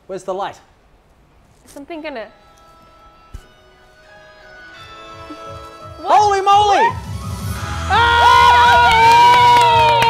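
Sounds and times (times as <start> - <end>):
people cheering: 6.6 - 10.0.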